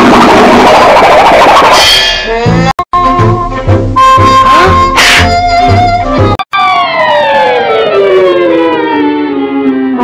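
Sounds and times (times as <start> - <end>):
tone sliding downward: 4.0 - 10.0.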